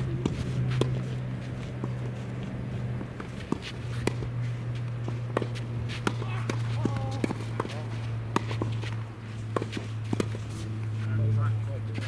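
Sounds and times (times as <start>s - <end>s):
tennis balls struck and bouncing: 0.0s - 11.0s
steady low hum: 0.0s - 12.0s
shoes scuffing on clay: 0.2s - 11.1s.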